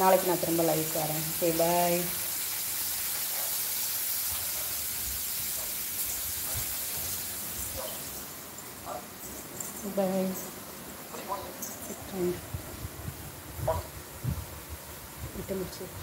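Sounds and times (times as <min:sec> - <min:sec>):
ceiling fan hissing: 0:00.0 - 0:16.0.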